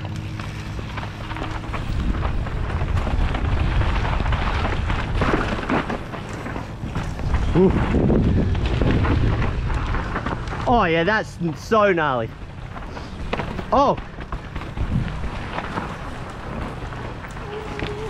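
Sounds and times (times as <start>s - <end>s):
bike knocks and rattles: 0.0s - 18.0s
tyres rolling on dirt: 0.0s - 18.0s
wind rushing over microphone: 1.6s - 6.1s, 6.7s - 11.5s, 13.1s - 18.0s.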